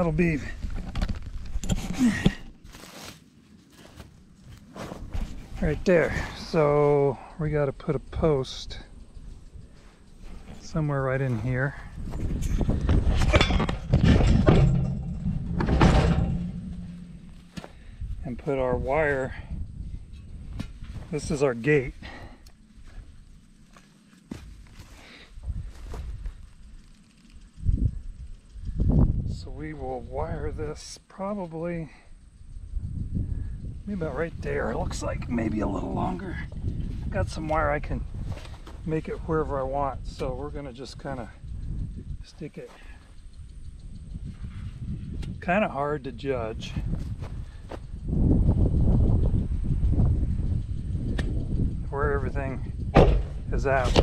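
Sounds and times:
low rumbling microphone noise: 0:03.9 - 0:23.8, 0:32.2 - 0:54.0
low thumps: 0:09.1 - 0:21.4, 0:46.7 - 0:54.0.

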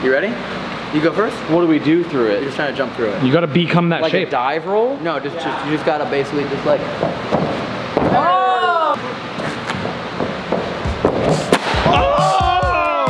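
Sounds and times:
men shouting and whooping: 0:08.1 - 0:09.0, 0:11.8 - 0:13.0
sharp impact: 0:11.2 - 0:12.0.

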